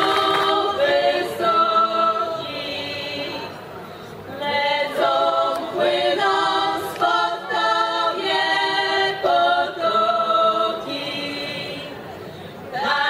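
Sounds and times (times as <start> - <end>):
women singing a cappella: 0.0 - 13.0.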